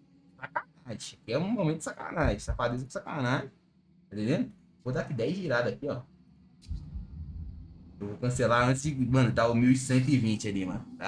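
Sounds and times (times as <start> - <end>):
low rumble of turning reels: 6.6 - 11.0.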